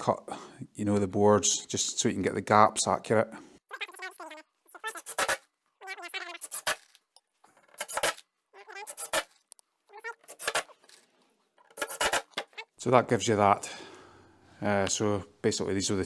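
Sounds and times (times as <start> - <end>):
impact driver driving screws: 7.6 - 8.2, 11.7 - 12.5.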